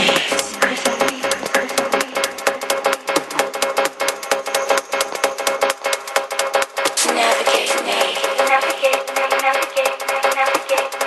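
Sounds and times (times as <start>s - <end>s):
techno music: 0.0s - 11.0s.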